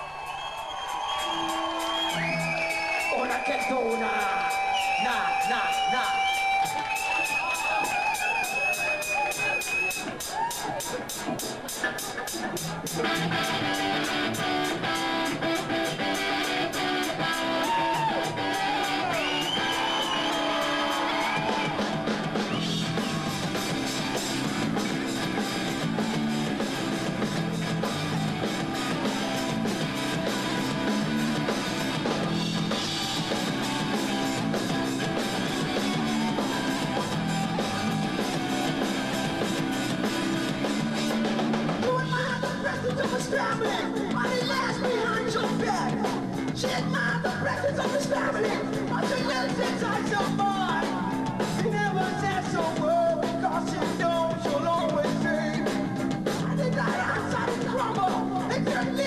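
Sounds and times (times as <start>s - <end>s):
rock band playing live: 0.0s - 59.0s.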